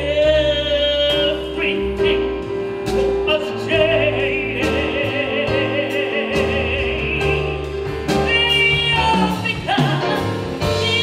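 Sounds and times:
orchestra playing: 0.0 - 11.0
woman singing with vibrato: 3.3 - 11.0.

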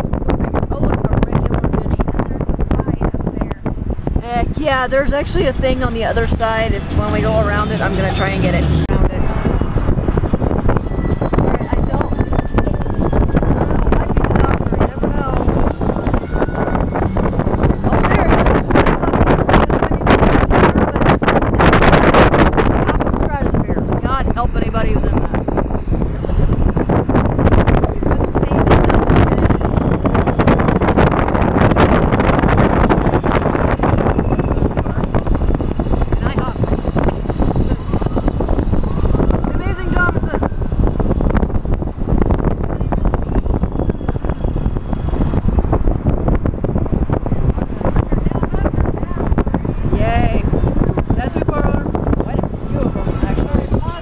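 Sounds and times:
faint voices: 0.0 - 41.0, 46.4 - 54.0
vehicle road noise: 0.0 - 54.0
wind buffeting microphone: 0.0 - 54.0.

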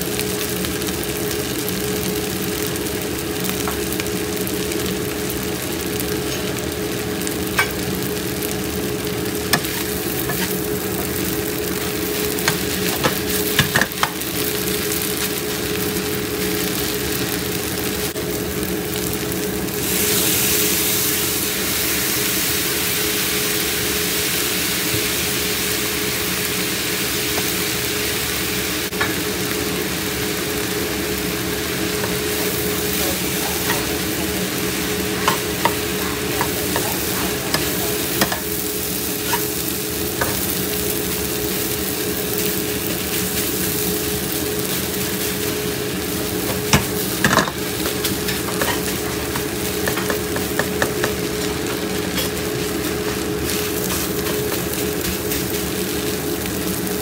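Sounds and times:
rice sizzling in a wok: 0.0 - 57.0.

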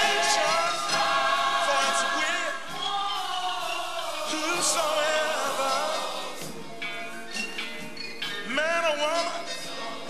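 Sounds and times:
gospel choir singing: 0.0 - 6.8.

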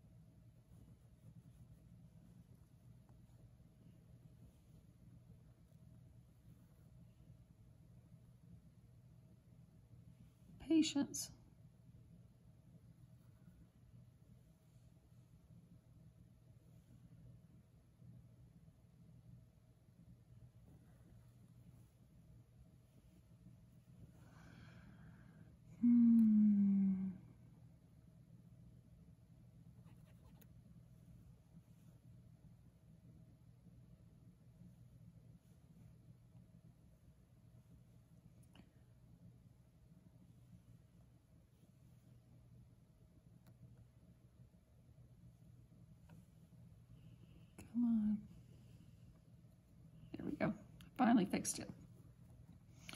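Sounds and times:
faint electrical hum: 0.0 - 52.9
breath: 24.2 - 25.5
woman humming: 25.7 - 27.4.

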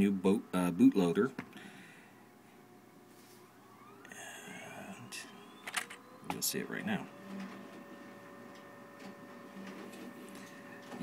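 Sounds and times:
faint electrical hum: 0.0 - 11.0
thin high whine: 2.1 - 11.0.

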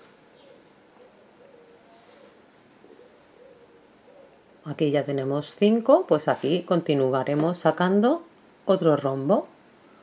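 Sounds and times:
faint soft hoot-like tones: 0.2 - 4.6.

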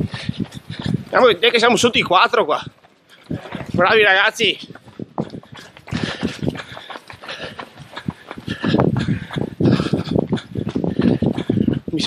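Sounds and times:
running footsteps on pavement: 0.0 - 12.0
microphone handling noise: 3.3 - 4.0.

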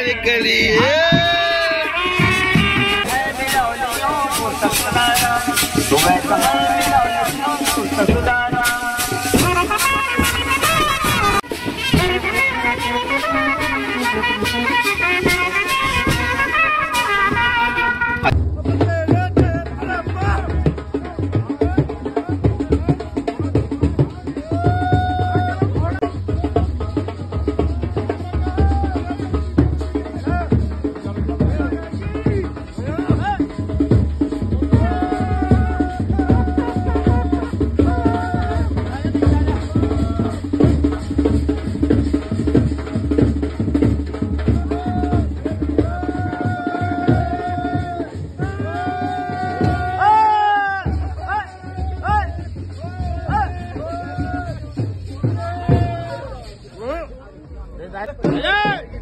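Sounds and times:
steady drum beat: 0.0 - 59.0
trumpet and clarinet melody: 1.4 - 18.4, 34.8 - 38.5.

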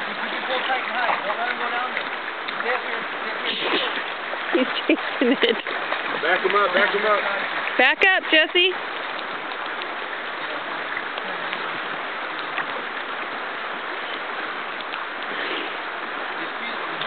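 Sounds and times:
creek water rushing over gravel: 0.0 - 17.0
faint ticks: 14.8 - 15.3.

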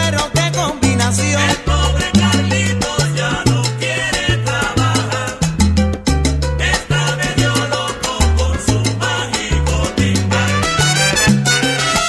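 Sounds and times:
bass line: 0.0 - 12.0
salsa band playing: 0.0 - 12.0
dense percussion rhythm: 4.4 - 7.7.

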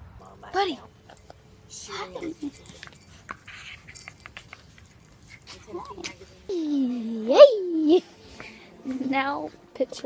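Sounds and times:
dog collar tags jingling: 1.0 - 7.0.

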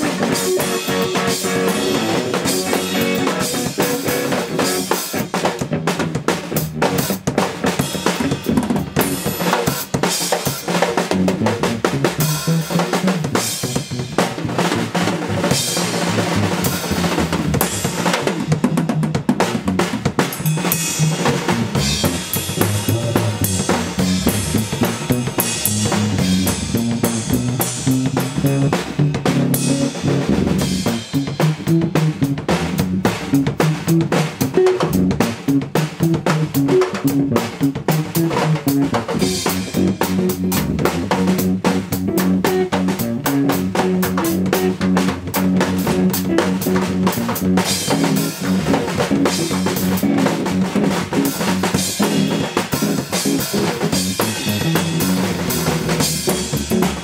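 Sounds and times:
drum kit playing busily: 0.0 - 57.0
electric guitar: 0.0 - 57.0.

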